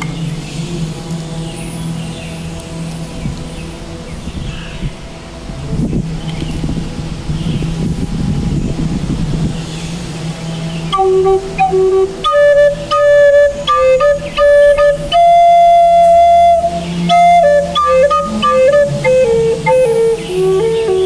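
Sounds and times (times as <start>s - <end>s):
rough low noise: 0.0s - 21.0s
steady low drone: 0.0s - 21.0s.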